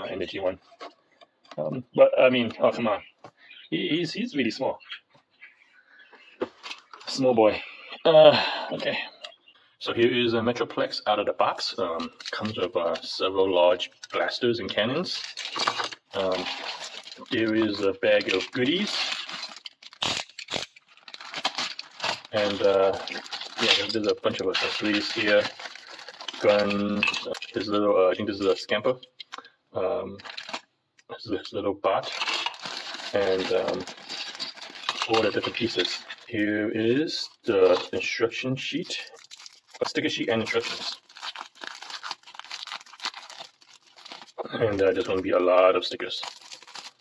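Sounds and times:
plastic bag crinkling: 0:11.6 - 0:28.6, 0:30.2 - 0:30.7, 0:32.0 - 0:38.2, 0:38.8 - 0:47.0.

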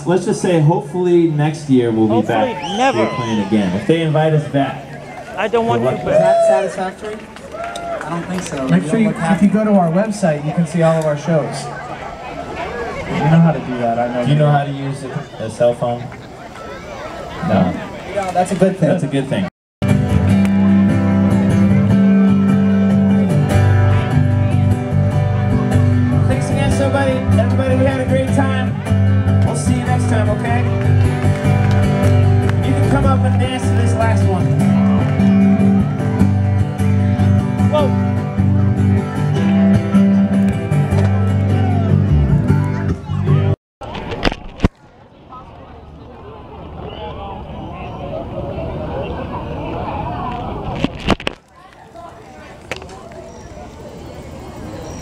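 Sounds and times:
faint outdoor background: 0:00.0 - 0:55.0
live band strumming guitar chords: 0:19.8 - 0:43.6.

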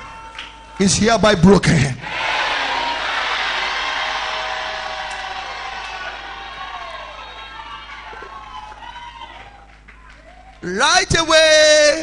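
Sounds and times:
congregation cheering and shouting: 0:02.0 - 0:10.7.

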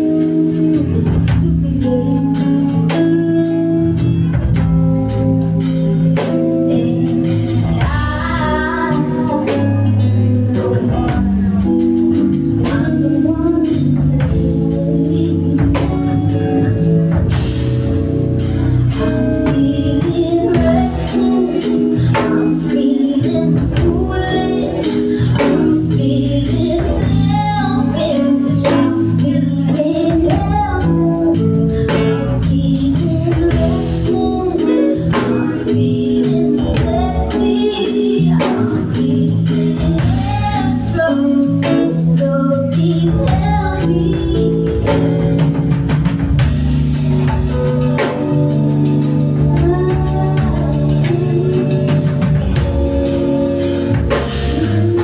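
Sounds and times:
bass guitar: 0:00.0 - 0:55.0
drum kit: 0:00.0 - 0:55.0
electric guitar: 0:00.0 - 0:55.0
keyboard: 0:00.0 - 0:55.0
woman singing: 0:00.0 - 0:55.0.

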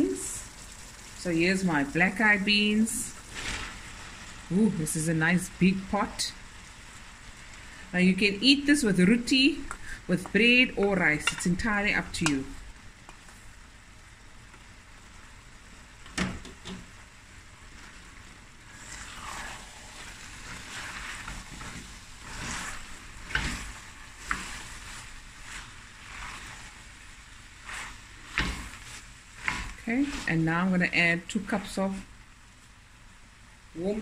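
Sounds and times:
faint sizzle: 0:00.0 - 0:34.0
wooden spoon scraping pot: 0:18.7 - 0:26.9, 0:27.6 - 0:30.5.

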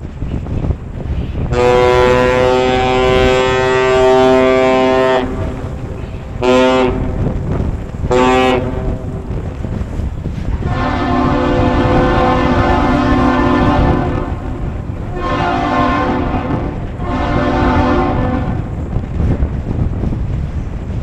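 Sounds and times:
wind rumble on microphone: 0:00.0 - 0:21.0
differently pitched horn: 0:01.5 - 0:07.2, 0:08.1 - 0:09.1, 0:10.6 - 0:18.7
ship's horn blasts: 0:01.5 - 0:19.0.

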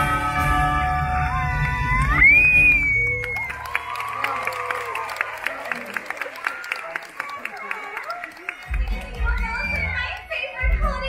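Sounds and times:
backing music: 0:00.0 - 0:03.4, 0:08.5 - 0:11.0
audience cheering and applauding: 0:00.0 - 0:11.0.

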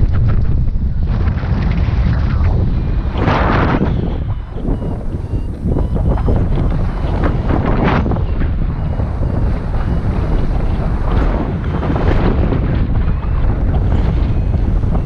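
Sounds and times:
wind rushing over microphone: 0:00.0 - 0:15.0.

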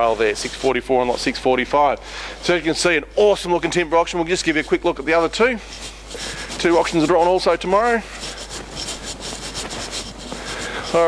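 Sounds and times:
rubbing and rustling: 0:00.0 - 0:01.8, 0:02.4 - 0:11.0.

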